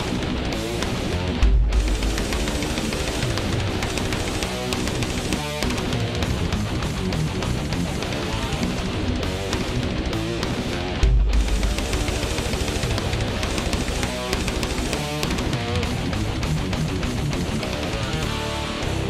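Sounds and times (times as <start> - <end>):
distorted electric guitar: 0.0 - 19.0
heavy metal music: 0.0 - 19.0
deep low hit: 1.3 - 17.6.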